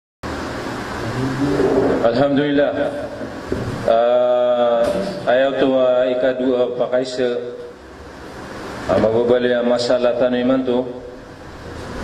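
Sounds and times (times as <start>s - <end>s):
background hum and hiss: 0.2s - 12.0s
man speaking: 8.9s - 11.0s.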